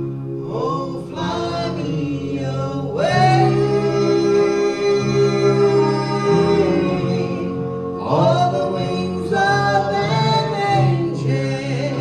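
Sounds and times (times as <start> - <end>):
musical accompaniment: 0.0 - 12.0
woman and man singing: 0.4 - 12.0.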